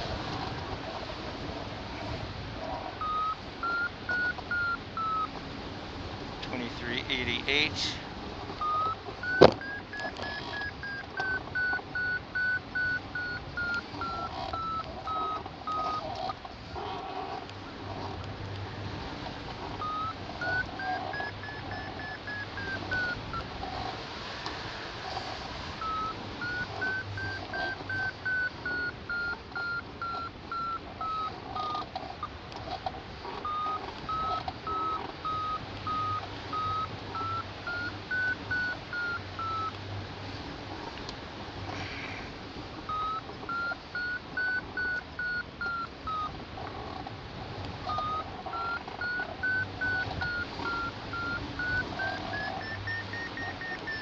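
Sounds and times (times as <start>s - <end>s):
variometer beeping: 3.0s - 5.5s, 6.4s - 24.0s, 24.6s - 40.0s, 42.8s - 54.0s.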